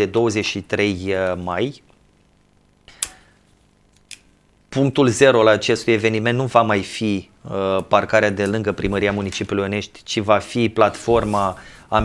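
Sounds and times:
man's sharp intake of breath: 2.9 - 3.4, 11.6 - 11.9.

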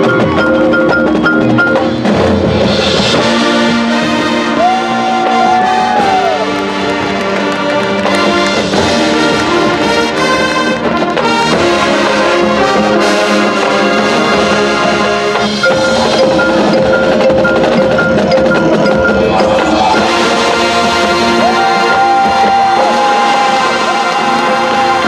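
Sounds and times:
marimba and xylophone: 0.0 - 4.0, 7.3 - 25.0
brass: 0.0 - 25.0
drums: 0.0 - 25.0.

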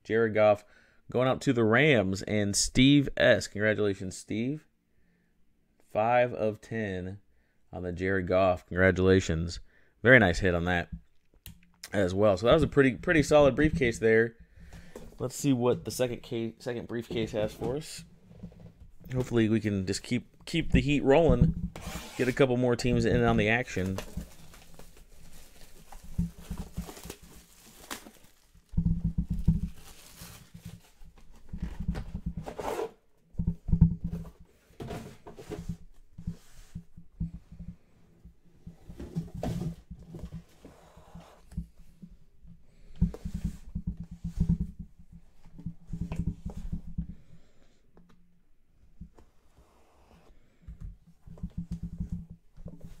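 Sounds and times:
hands handling metal briefcase: 23.7 - 29.9
knocks and thumps on tabletop: 33.3 - 37.9, 42.9 - 47.2.

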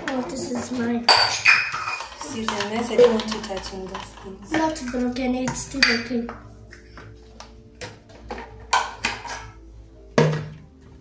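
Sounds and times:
plastic bottles clattering: 0.0 - 11.0
soft background music: 0.0 - 11.0.

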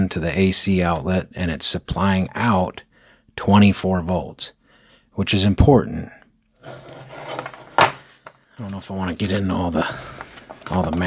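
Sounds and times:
metal case scraping on wood: 6.6 - 8.3.

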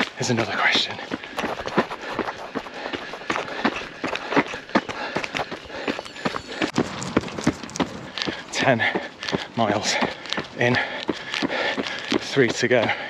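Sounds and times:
footsteps on gravel: 0.0 - 13.0.

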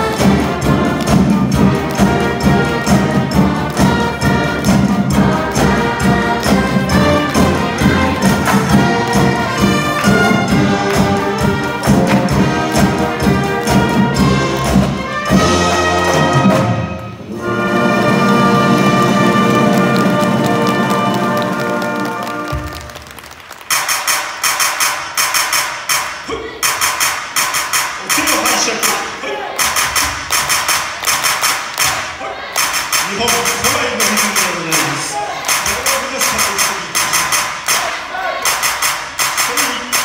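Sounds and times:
steady beat of sharp strokes: 0.0 - 22.0, 23.7 - 40.0
man speaking over loudspeaker: 28.0 - 29.6, 33.0 - 37.4, 39.4 - 40.0.

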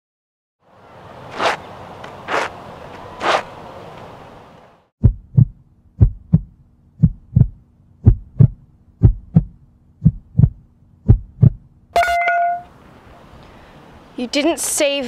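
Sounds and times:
heartbeat double thumps: 5.0 - 11.7
sharp ringing hit: 12.0 - 12.7.

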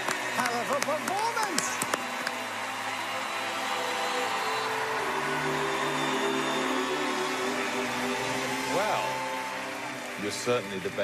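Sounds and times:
audience cheering and applauding: 0.0 - 11.0.

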